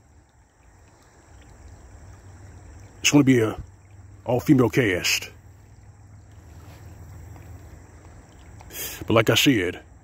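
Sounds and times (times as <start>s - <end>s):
soft hiss: 0.0s - 9.8s.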